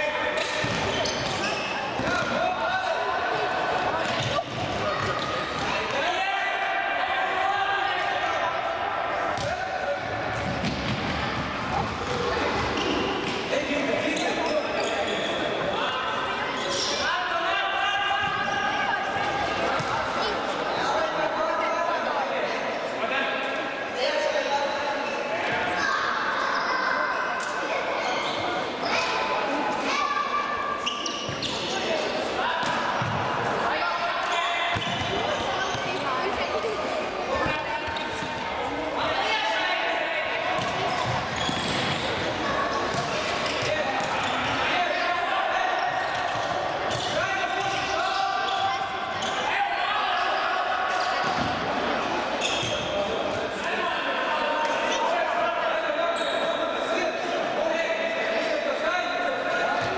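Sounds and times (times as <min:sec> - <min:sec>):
ball kicked and bouncing on court: 0:00.4 - 0:02.4, 0:09.3 - 0:09.6, 0:10.2 - 0:13.4, 0:32.6 - 0:33.3, 0:40.5 - 0:42.1, 0:42.9 - 0:44.6
players shouting: 0:37.3 - 0:52.6.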